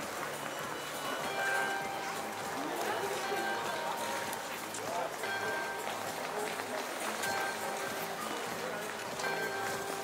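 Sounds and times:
skaters talking and calling out: 0:00.0 - 0:10.0.

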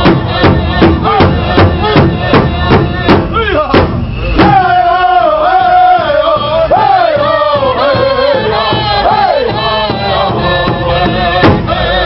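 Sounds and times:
large drum beats: 0:00.0 - 0:12.0
men singing in chorus: 0:00.0 - 0:12.0.

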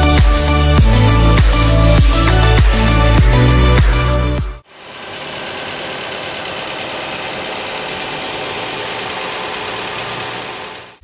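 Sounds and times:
electronic music: 0:00.0 - 0:04.6
car engine idling: 0:00.5 - 0:11.0.

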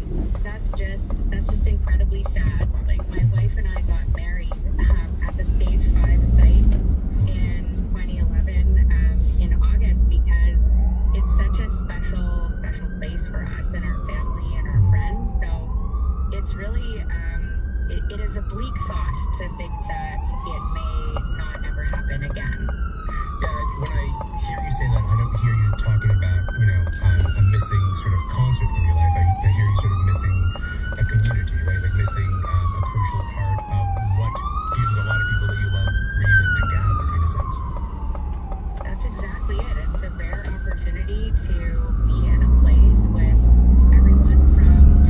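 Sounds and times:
traffic and road noise: 0:00.0 - 0:45.0
ambulance siren wailing: 0:00.3 - 0:45.0.

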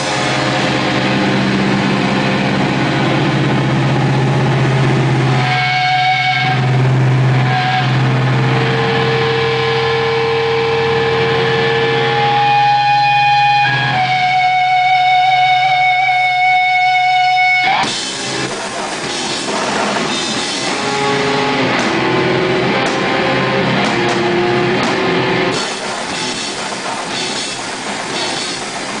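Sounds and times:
distorted electric guitar drone: 0:00.0 - 0:29.0
guitar feedback tones: 0:00.0 - 0:29.0.

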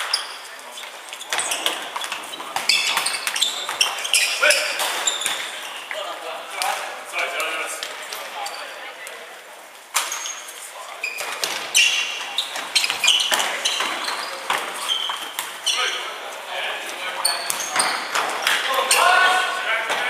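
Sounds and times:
sneakers squeaking on wooden floor: 0:00.0 - 0:06.2, 0:08.2 - 0:09.0, 0:10.0 - 0:20.0
players calling out: 0:11.0 - 0:20.0.

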